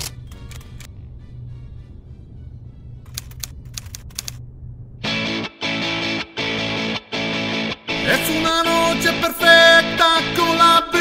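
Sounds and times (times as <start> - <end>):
low steady hum: 0.0 - 5.5.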